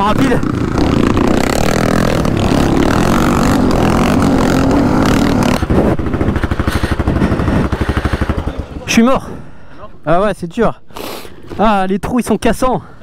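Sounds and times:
man talking: 0:00.0 - 0:00.5, 0:08.3 - 0:10.9, 0:11.5 - 0:13.0
motorcycle engine running: 0:00.0 - 0:09.6.

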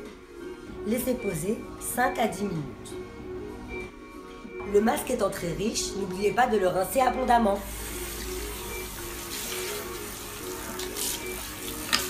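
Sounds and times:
water spraying into basin: 0:07.7 - 0:12.0.

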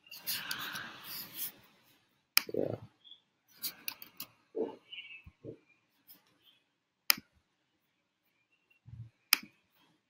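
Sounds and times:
computer mouse clicks: 0:00.2 - 0:00.9, 0:03.6 - 0:04.4.

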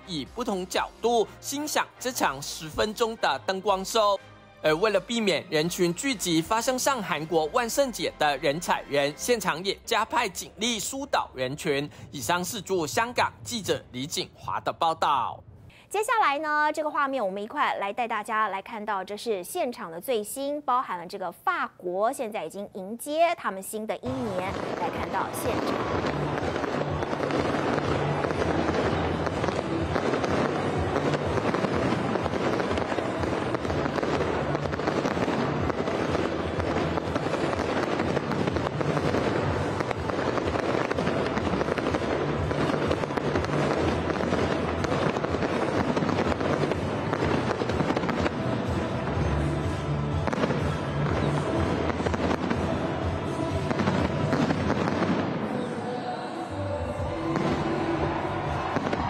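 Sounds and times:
music playing: 0:00.0 - 0:14.6, 0:24.0 - 0:59.0
fireworks crackling: 0:24.0 - 0:56.3, 0:56.9 - 0:59.0.

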